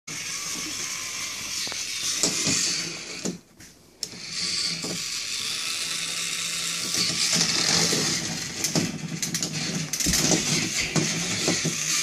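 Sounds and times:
toy train motor whirring: 0.1 - 12.0.

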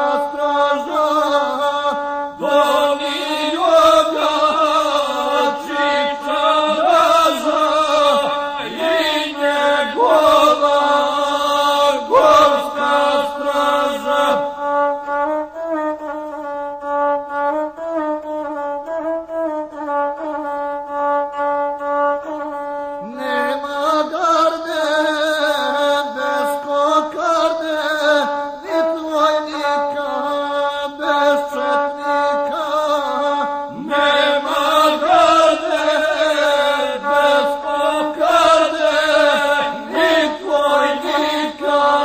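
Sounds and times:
man chanting: 0.0 - 16.5, 21.4 - 42.0
bowed single-string fiddle: 0.0 - 42.0.

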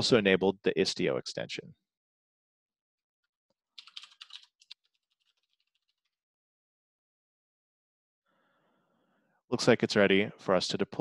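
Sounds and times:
typing on computer keyboard: 3.8 - 5.9.

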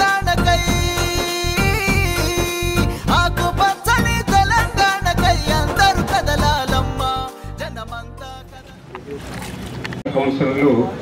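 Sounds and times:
background music: 0.0 - 9.0.

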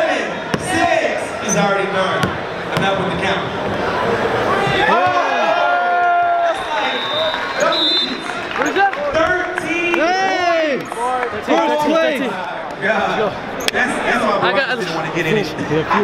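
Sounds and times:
crowd noise: 0.0 - 16.0
men shouting and whooping: 4.6 - 8.9, 10.0 - 10.8.

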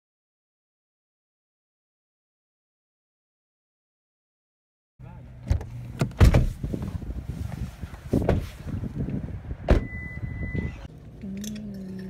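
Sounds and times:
car door clicks and clunks: 5.4 - 7.0, 8.1 - 10.9
steady high beep: 9.8 - 10.8.

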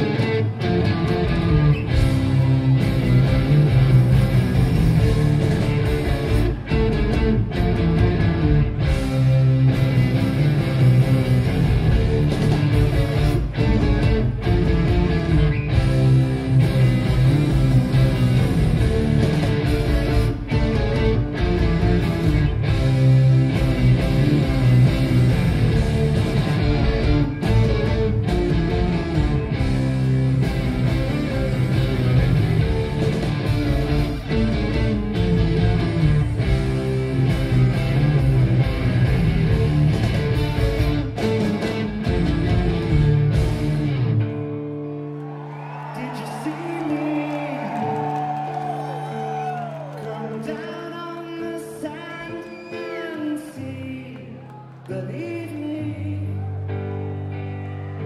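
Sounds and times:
live rock band instrumental: 0.0 - 46.0.

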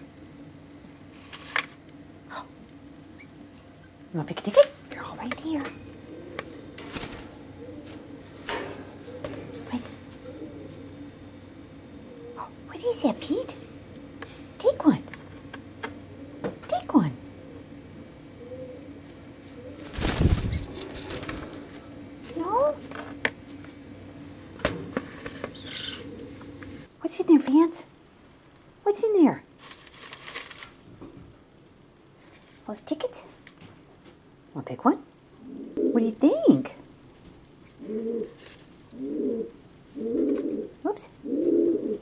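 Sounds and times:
pigeon cooing: 5.0 - 13.9, 15.8 - 22.9, 25.3 - 26.9, 35.4 - 36.8, 37.7 - 42.0
bird wings flapping: 6.8 - 9.9, 19.4 - 22.4.

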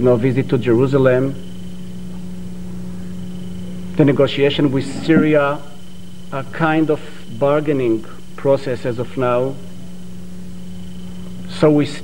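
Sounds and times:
electrical hum: 1.9 - 6.6
faint high-pitched whine: 3.0 - 7.0.

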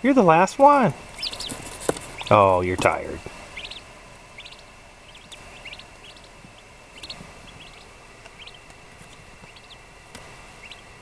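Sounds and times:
turkey poults peeping: 1.0 - 11.0.

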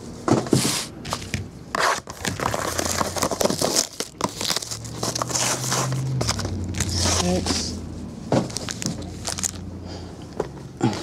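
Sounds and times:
cardboard scraping and knocks: 0.3 - 7.7, 8.3 - 9.0
crinkling plastic wrap: 2.1 - 7.8, 8.4 - 9.7.

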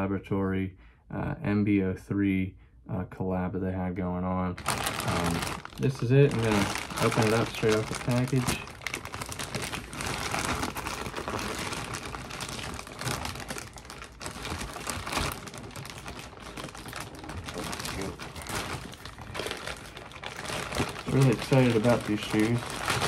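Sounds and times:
plastic mailer bag crinkling: 4.6 - 23.0.

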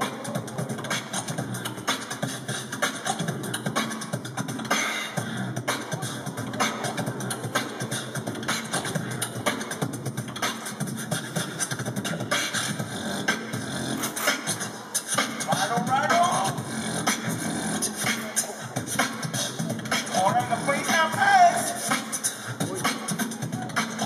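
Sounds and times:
beatboxing through speakers: 0.0 - 24.0.

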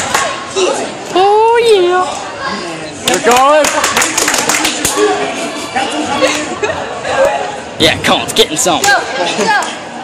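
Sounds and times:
quieter voices: 0.0 - 10.0.

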